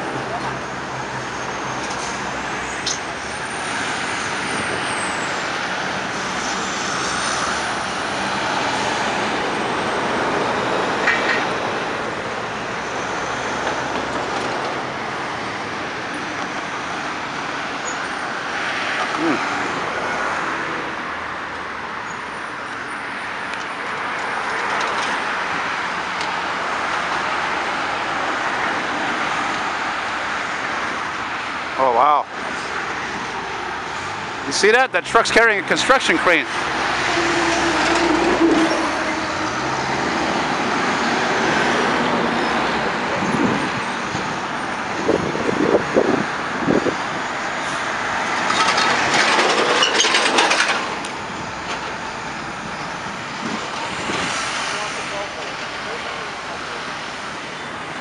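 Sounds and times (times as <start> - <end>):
cars and trucks passing: 0.0 - 58.0.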